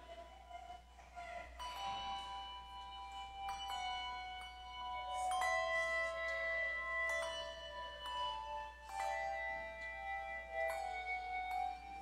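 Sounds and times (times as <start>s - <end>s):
handbell choir playing: 0.0s - 12.0s.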